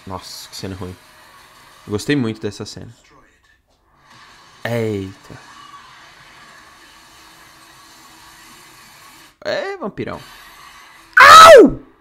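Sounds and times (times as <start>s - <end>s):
loud voice cry: 11.2s - 11.8s.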